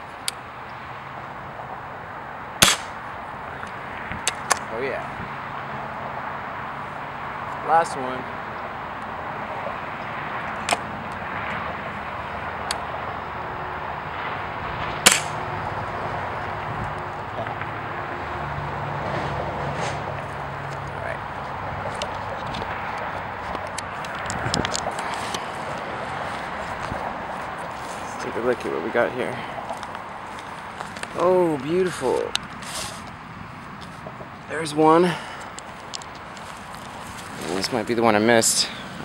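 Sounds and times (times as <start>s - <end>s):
pellet gun firing: 2.6s - 3.0s, 15.0s - 15.4s.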